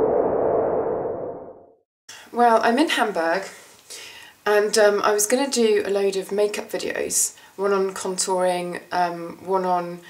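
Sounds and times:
steady tone: 0.0 - 1.8.

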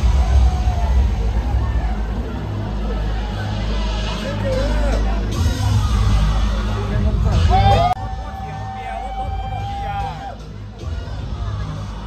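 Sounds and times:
crowd chatter: 0.0 - 12.0
electronic dance music bass: 0.0 - 12.0.

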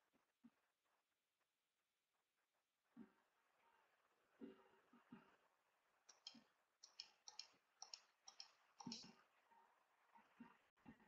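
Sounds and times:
computer mouse clicks: 6.1 - 9.2.

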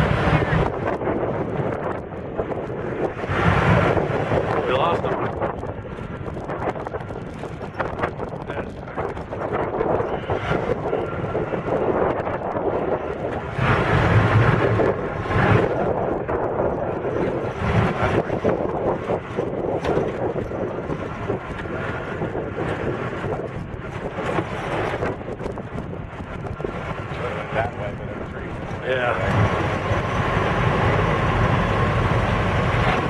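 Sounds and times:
jeep engine running: 0.0 - 33.0
wind buffeting microphone: 0.0 - 33.0.

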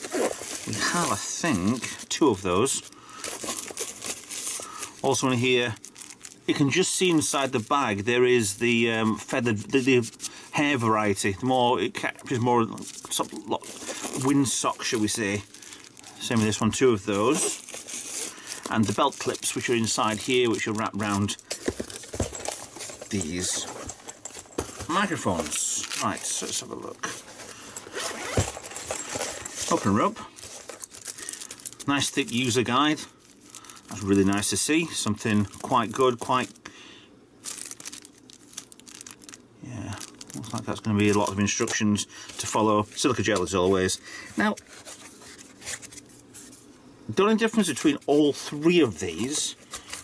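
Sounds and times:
zipper being pulled open: 0.0 - 1.0, 27.8 - 29.9
plastic bags crinkling: 0.0 - 36.6, 37.4 - 43.9.

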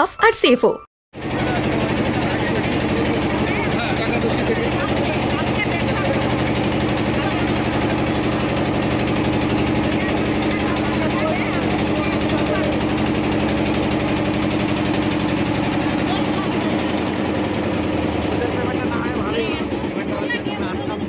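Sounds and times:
engine humming: 1.2 - 21.0.

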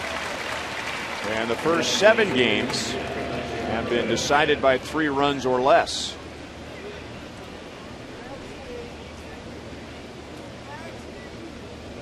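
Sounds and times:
distant crowd voices: 0.0 - 12.0.

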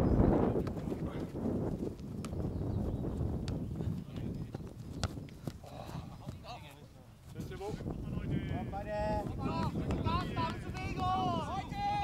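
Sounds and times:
wind buffeting microphone: 0.0 - 12.0
distant shouts: 8.5 - 12.0.

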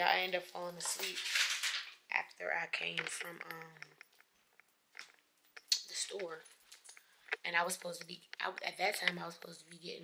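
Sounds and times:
person talking: 0.0 - 1.5, 2.1 - 4.0, 5.7 - 6.6, 7.4 - 10.0.

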